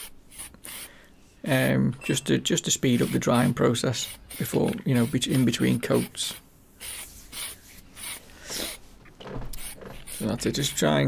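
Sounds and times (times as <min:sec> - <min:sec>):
aerosol can spraying: 0:02.9 - 0:08.8, 0:09.6 - 0:10.4.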